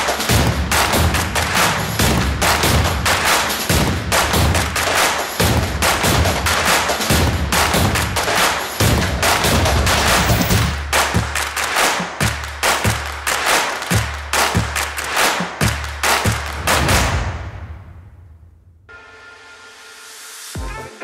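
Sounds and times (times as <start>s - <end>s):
music with heavy percussion: 0.0s - 17.7s.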